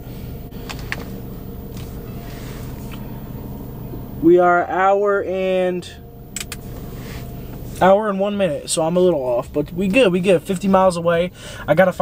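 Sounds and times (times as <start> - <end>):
car engine idling in cabin: 0.0 - 12.0.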